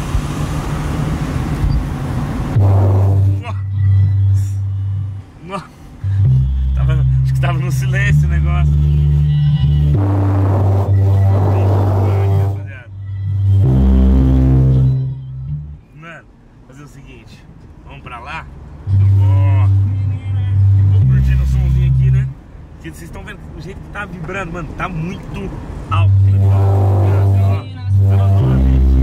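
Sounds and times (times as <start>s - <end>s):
bass-heavy music from car stereo: 2.5s - 5.4s, 6.0s - 15.8s, 18.8s - 22.4s, 25.9s - 29.0s.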